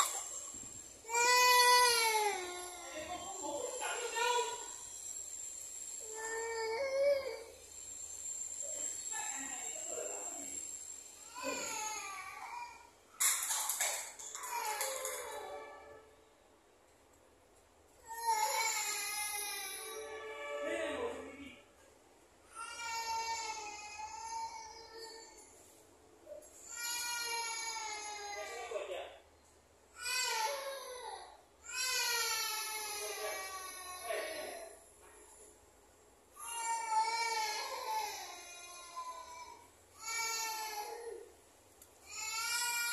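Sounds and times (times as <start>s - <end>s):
toddler crying: 1.1s - 4.7s, 11.3s - 12.9s, 14.3s - 15.8s, 18.1s - 20.1s, 22.5s - 25.4s, 26.6s - 28.6s, 30.0s - 34.7s, 36.4s - 41.3s, 42.0s - 42.9s.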